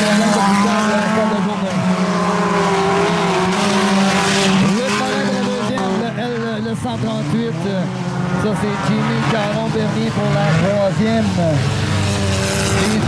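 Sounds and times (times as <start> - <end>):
race car engines revving: 0.0 - 13.0.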